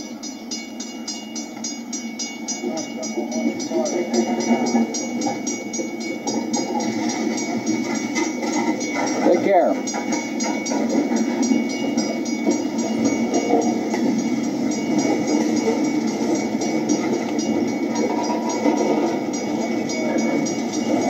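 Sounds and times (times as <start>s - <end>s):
train rumbling on track: 0.0s - 21.0s.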